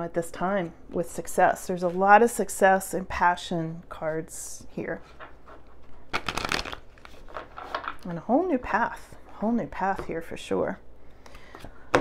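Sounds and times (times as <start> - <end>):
cards being shuffled: 5.1 - 8.0.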